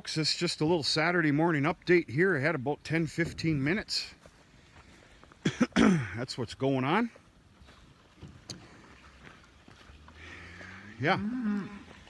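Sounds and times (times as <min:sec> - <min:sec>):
cow mooing: 0:10.2 - 0:12.0.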